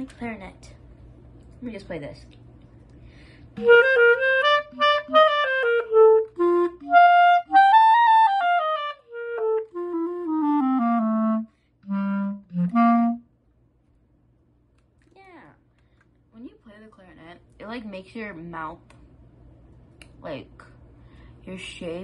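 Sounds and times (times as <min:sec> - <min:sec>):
solo clarinet tune: 0:03.6 - 0:13.3.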